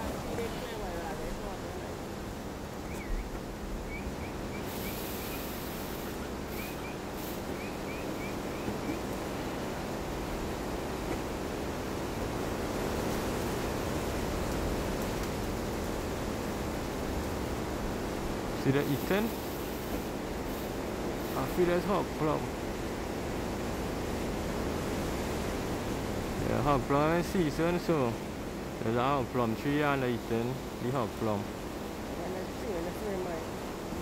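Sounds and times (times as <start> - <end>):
steady rushing background noise: 0.0 - 34.0
faint high chirps: 2.8 - 9.0.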